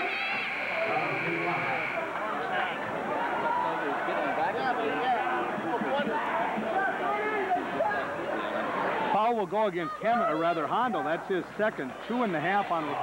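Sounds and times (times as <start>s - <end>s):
crowd babble: 0.0s - 13.0s.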